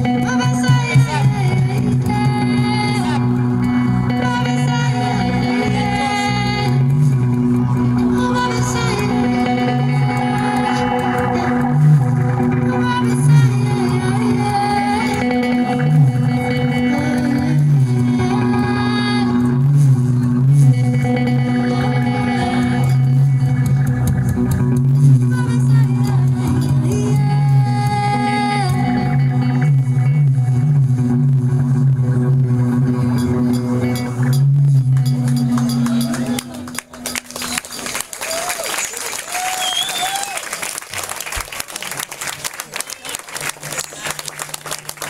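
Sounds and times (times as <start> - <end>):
steady low drone: 0.0 - 38.2
bass guitar notes: 0.0 - 38.4, 41.3 - 45.0
electric guitar through effects: 0.0 - 45.0.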